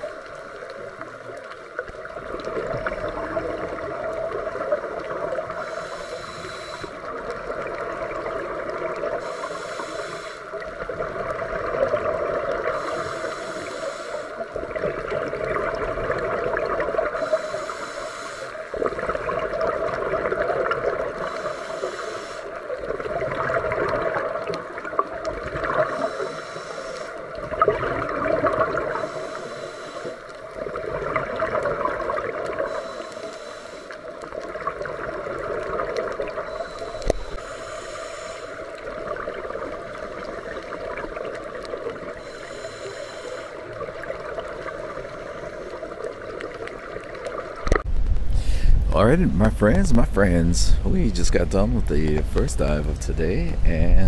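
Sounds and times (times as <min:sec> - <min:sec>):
bubbles gurgling: 0:00.0 - 0:05.5, 0:07.1 - 0:09.2, 0:10.6 - 0:12.9, 0:14.4 - 0:17.2, 0:18.7 - 0:21.3, 0:22.6 - 0:26.1, 0:27.2 - 0:29.0, 0:30.5 - 0:32.8, 0:34.2 - 0:37.4, 0:38.7 - 0:42.4, 0:43.6 - 0:47.9
regulator inhalation hiss: 0:05.4 - 0:07.1, 0:09.1 - 0:10.6, 0:12.6 - 0:14.5, 0:17.1 - 0:18.8, 0:21.2 - 0:22.8, 0:25.9 - 0:27.3, 0:28.9 - 0:30.4, 0:32.6 - 0:34.1, 0:36.6 - 0:38.9, 0:42.1 - 0:43.8.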